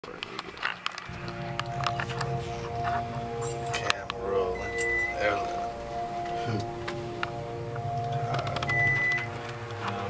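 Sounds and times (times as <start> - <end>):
elevator hum: 1.2 - 10.0
short high-pitched beep: 4.5 - 5.4, 8.7 - 9.3.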